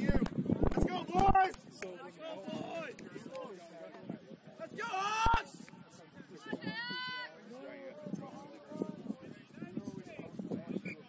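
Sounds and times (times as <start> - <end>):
distant shouts and voices: 0.0 - 11.0.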